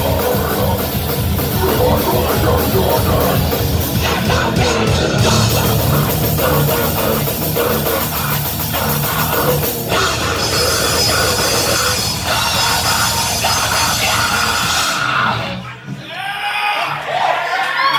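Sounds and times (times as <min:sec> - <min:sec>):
distorted electric guitars: 0:00.0 - 0:16.0
drum kit: 0:00.0 - 0:16.0
rock vocals: 0:00.0 - 0:16.0.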